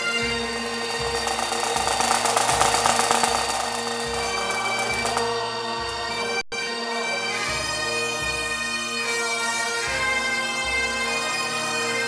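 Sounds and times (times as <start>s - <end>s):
bagpipes playing: 0.0s - 12.0s
dense rattling noise: 0.6s - 5.4s.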